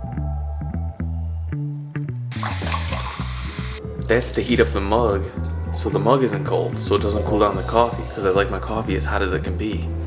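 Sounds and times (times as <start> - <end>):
background music with bass line: 0.0 - 10.0
water running into a mug: 2.3 - 3.8.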